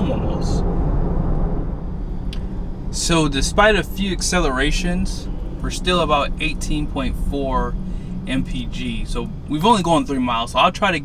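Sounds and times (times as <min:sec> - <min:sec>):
road and tyre rumble in car cabin: 0:00.0 - 0:11.0.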